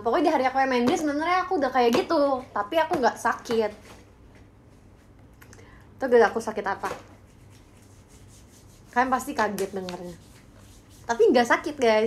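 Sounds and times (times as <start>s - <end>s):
fingers rubbing and rustling: 7.1s - 11.8s.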